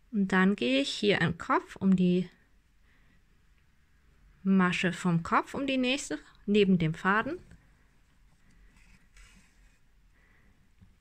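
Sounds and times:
faint handling of yarn: 0:07.0 - 0:11.0.

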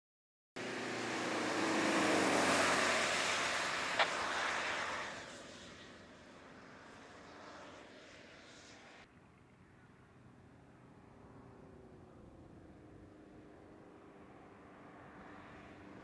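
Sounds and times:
car engine and tyre noise: 0:00.6 - 0:16.0.

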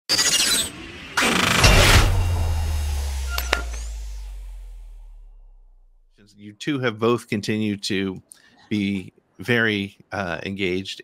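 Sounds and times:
noisy swooshes: 0:01.0 - 0:05.9
deep boom: 0:01.5 - 0:06.1.

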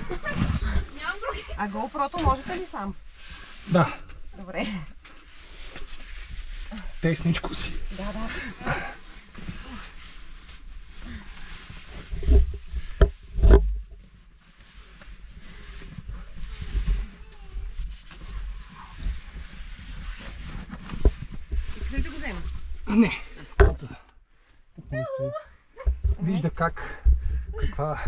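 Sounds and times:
clothing rubbing against rock: 0:00.0 - 0:23.9.

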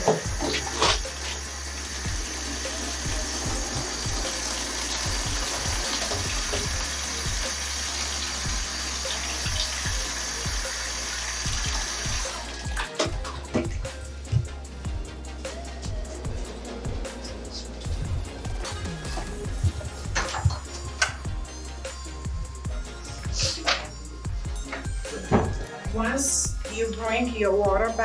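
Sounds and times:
tap water running into basin: 0:00.0 - 0:14.4, 0:18.6 - 0:21.3
basin knocking in sink: 0:18.8 - 0:21.2.

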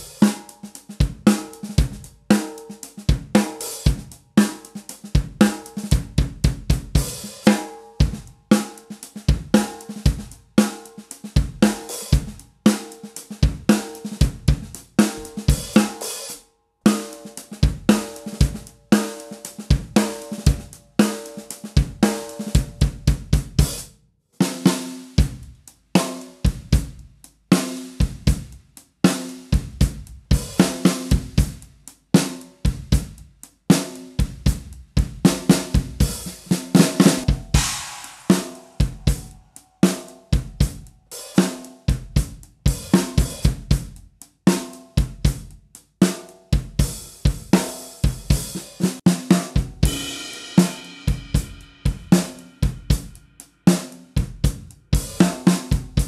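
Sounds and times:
drum kit groove: 0:00.0 - 0:56.0
metal snare drum: 0:00.0 - 0:56.0.

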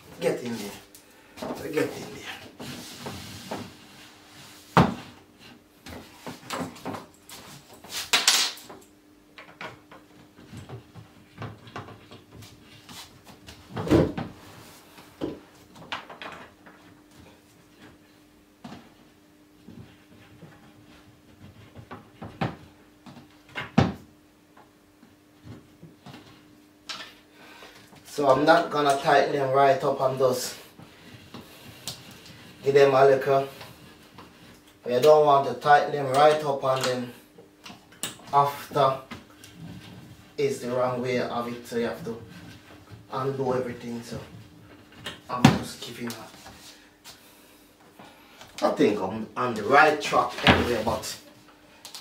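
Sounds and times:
faint steady hum: 0:00.0 - 0:52.0.

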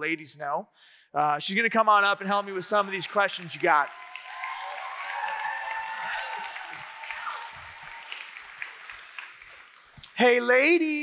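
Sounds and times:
audience applauding: 0:02.3 - 0:10.2
audience cheering: 0:02.4 - 0:09.8.

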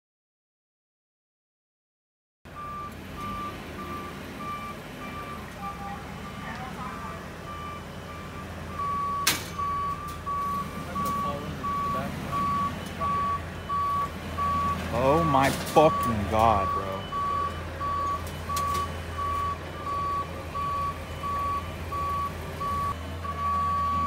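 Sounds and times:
forklift engine running: 0:02.5 - 0:24.0
forklift warning beeper: 0:02.5 - 0:24.0.

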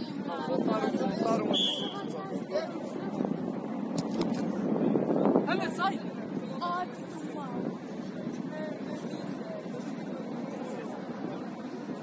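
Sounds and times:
distant voices of players: 0:00.0 - 0:05.4
noisy outdoor background: 0:00.0 - 0:12.0.

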